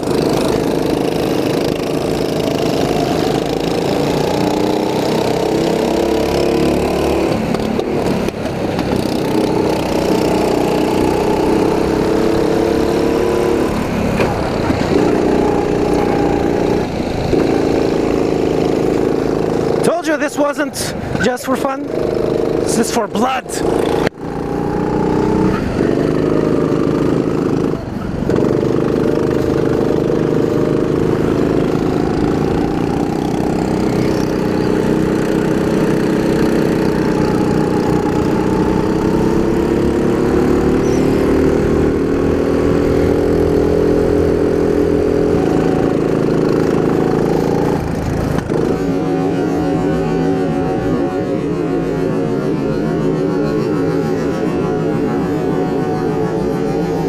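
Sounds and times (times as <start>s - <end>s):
kart engine at high revs: 0.0s - 57.0s.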